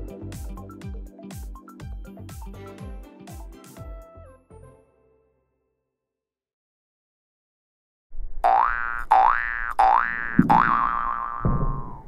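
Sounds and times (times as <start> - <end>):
cartoon boing: 8.4 - 12.0
low thumps: 10.3 - 12.0.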